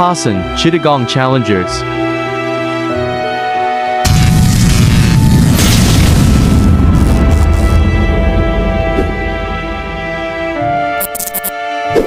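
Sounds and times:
music: 0.0s - 12.0s
deep boom and rumble: 4.1s - 10.6s.

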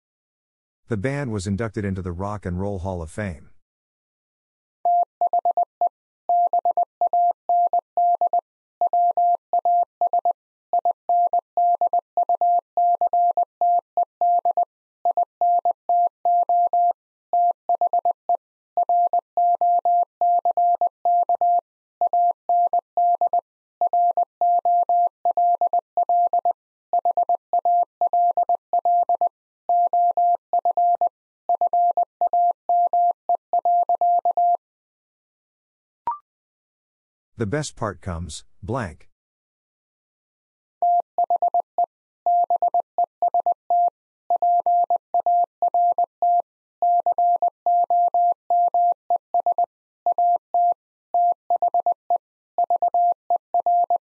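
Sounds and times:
morse code beeps: 42.3s - 51.9s, 52.6s - 54.0s.

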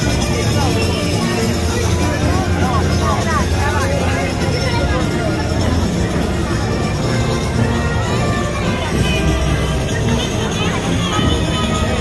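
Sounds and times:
crowd talking in a street: 0.0s - 12.0s
nearer voices: 0.0s - 12.0s.

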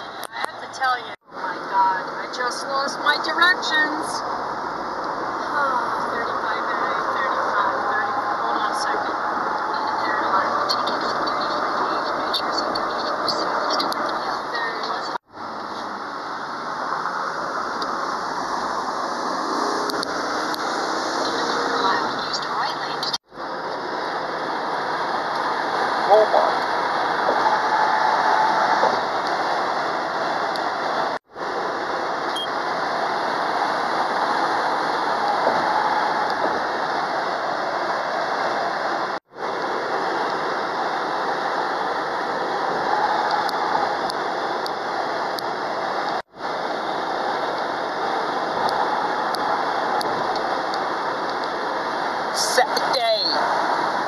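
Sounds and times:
car road and engine noise: 0.0s - 54.0s.

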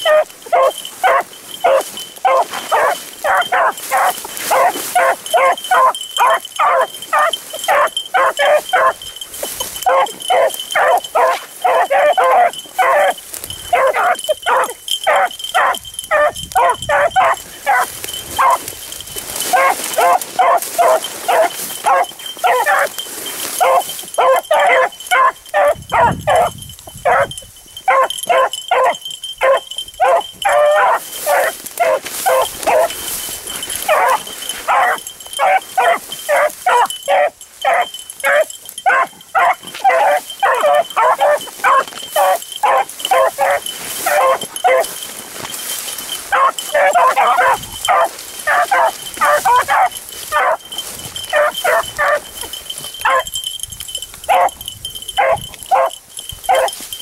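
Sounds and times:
dogs barking: 0.0s - 57.0s.

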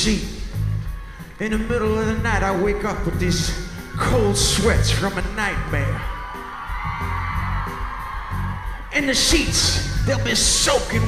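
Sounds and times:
rock band playing quiet music: 0.0s - 11.0s.

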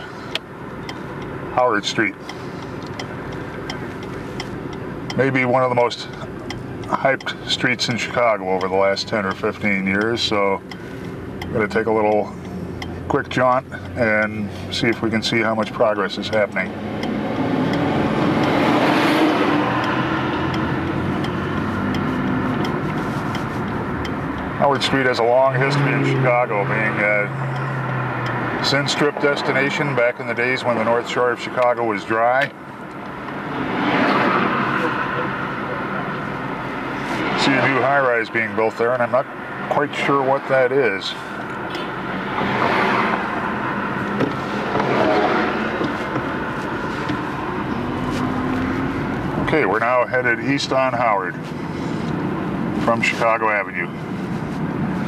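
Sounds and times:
car engine and road noise: 0.0s - 55.0s
passing traffic: 0.0s - 55.0s.

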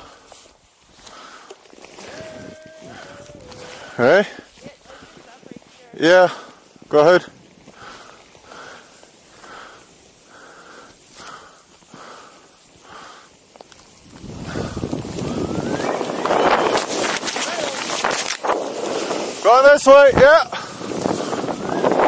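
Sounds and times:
snowboard running through snow: 0.0s - 22.0s
wind on microphone: 2.0s - 5.7s, 14.0s - 22.0s.

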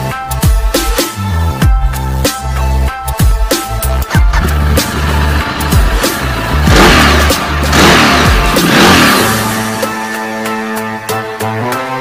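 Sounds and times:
electronic music: 0.0s - 12.0s
motorcycle engine revving: 4.0s - 10.6s.

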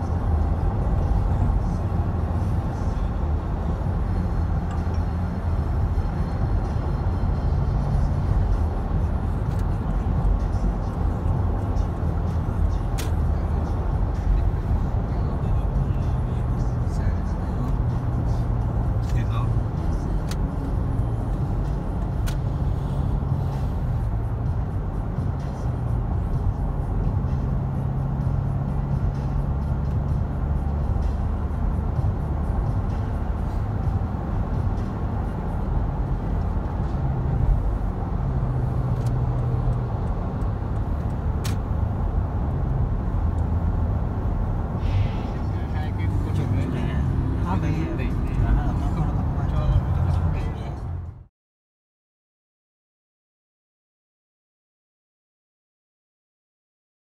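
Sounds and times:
car tyres and engine drone: 0.0s - 51.3s.

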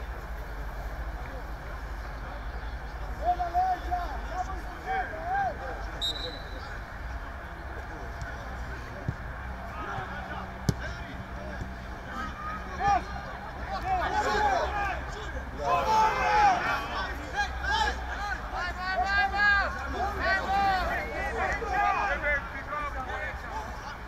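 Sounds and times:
men shouting and calling out: 3.0s - 6.0s, 9.5s - 24.0s.

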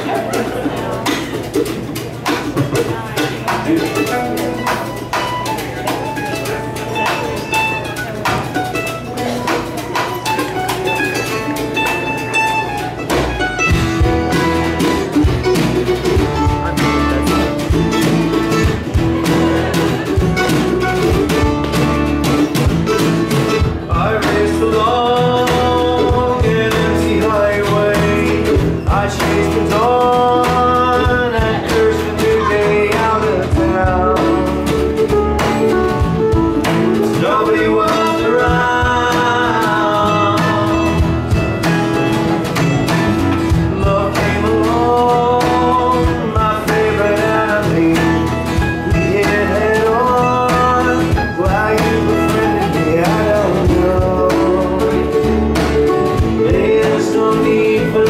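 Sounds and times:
acoustic guitars strumming: 0.0s - 58.0s
drum: 0.0s - 58.0s
folk-rock band playing live: 0.0s - 58.0s
melodic lead line: 3.4s - 58.0s.

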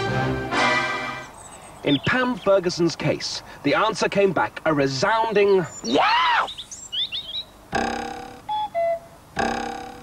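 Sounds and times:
cuckoo call: 5.8s - 10.0s
ringing struck note: 7.7s - 8.5s, 9.4s - 10.0s.

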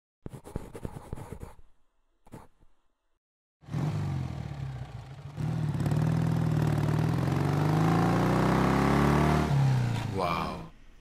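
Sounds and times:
motorcycle engine revving: 3.6s - 10.2s.

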